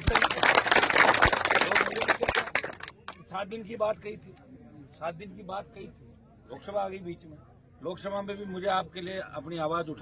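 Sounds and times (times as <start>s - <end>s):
crowd applauding: 0.0s - 3.2s.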